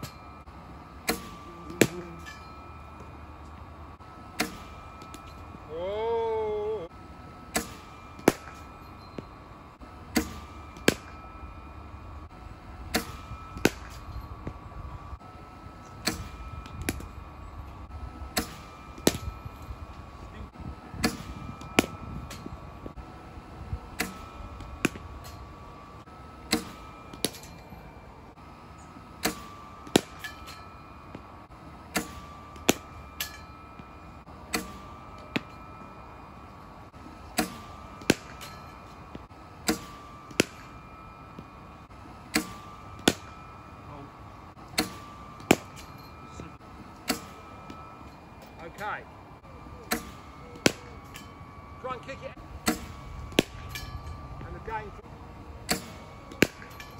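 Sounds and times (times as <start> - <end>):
bowling machine whine: 0.0 - 56.9
bat hitting ball: 1.0 - 3.2, 4.2 - 5.6, 7.5 - 9.4, 10.0 - 12.1, 12.9 - 14.6, 15.8 - 17.2, 18.2 - 20.0, 20.9 - 22.8, 23.8 - 25.7, 26.4 - 27.8, 28.9 - 41.6, 42.2 - 43.8, 44.6 - 48.0, 49.8 - 51.4, 52.6 - 54.7, 55.6 - 56.9
ball shot out of machine: 4.3 - 5.3, 7.5 - 8.7, 26.4 - 27.6, 31.9 - 33.4, 34.5 - 35.6, 37.3 - 38.7, 42.3 - 43.4, 44.6 - 46.0, 49.8 - 51.3, 52.6 - 54.0, 55.6 - 56.9.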